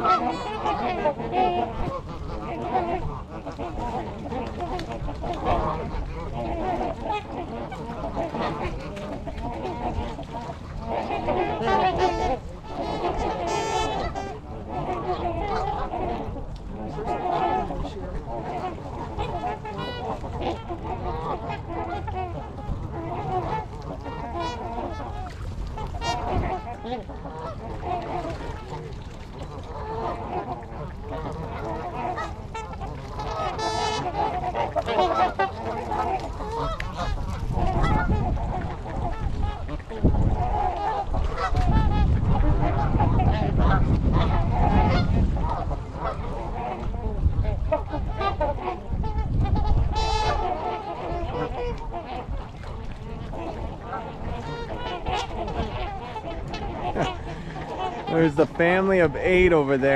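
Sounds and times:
geese and swans honking: 0.0s - 59.9s.

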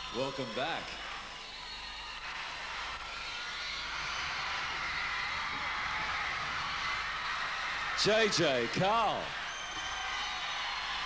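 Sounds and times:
audience applauding and cheering: 0.0s - 11.0s.

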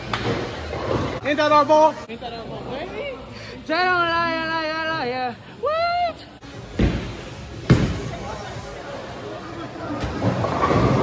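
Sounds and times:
bowling ball rolling: 10.0s - 11.0s.

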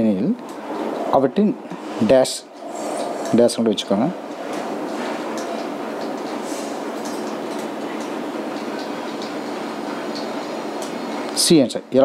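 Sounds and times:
steady even noise: 0.0s - 12.0s.

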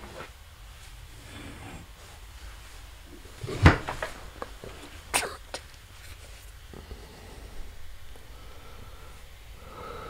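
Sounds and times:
person stifled cough: 5.1s - 5.7s.

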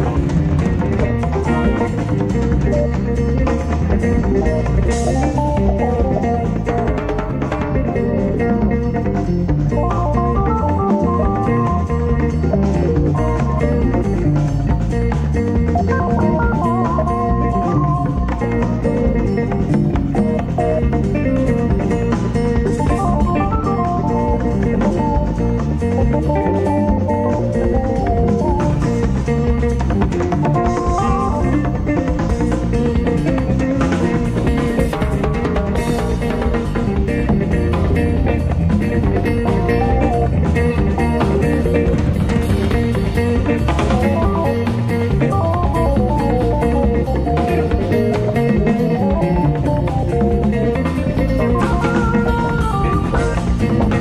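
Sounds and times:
drums and percussion: 0.0s - 54.0s
electric bass: 0.0s - 54.0s
organ-like keyboard melody: 0.0s - 54.0s.

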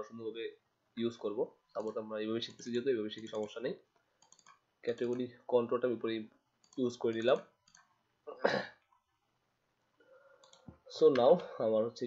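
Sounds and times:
person speaking: 0.0s - 3.9s, 4.8s - 7.6s, 10.7s - 12.0s
computer mouse clicks: 1.7s - 5.3s, 6.6s - 8.0s, 10.4s - 11.5s.

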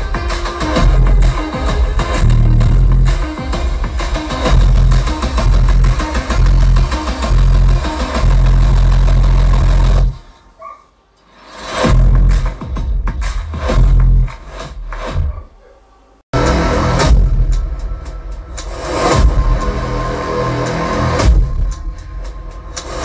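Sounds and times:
bass-heavy electronic music: 0.0s - 10.4s, 11.4s - 15.5s, 16.3s - 23.0s
trailer-style music with percussive hits: 11.3s - 15.4s, 16.4s - 23.0s.

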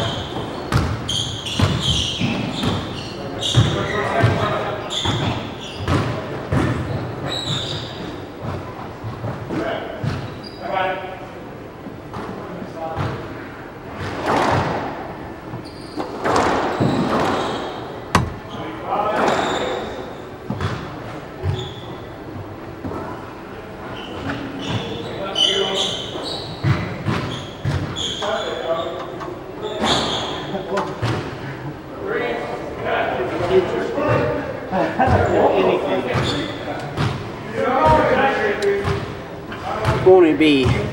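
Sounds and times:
squash ball hits echoing: 16.2s - 19.4s
dull thuds: 18.1s - 18.6s
indistinct talking: 39.8s - 40.9s.

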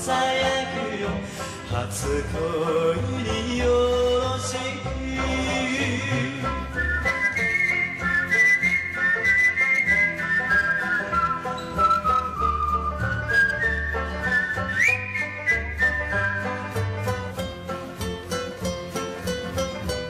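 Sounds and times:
whistled melody: 5.2s - 20.0s.

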